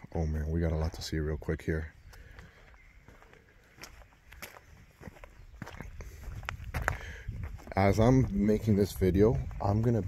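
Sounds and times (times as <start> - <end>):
footsteps scuffing and knocking: 3.0 - 10.0.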